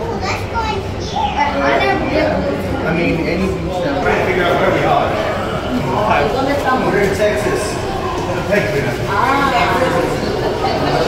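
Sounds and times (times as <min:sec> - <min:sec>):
children's voices: 0:00.0 - 0:03.0, 0:03.6 - 0:11.0
crowd chatter: 0:00.0 - 0:11.0.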